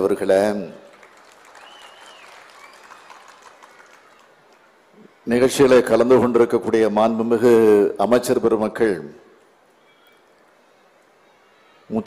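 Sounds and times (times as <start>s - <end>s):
faint crowd applause: 0.0s - 5.9s.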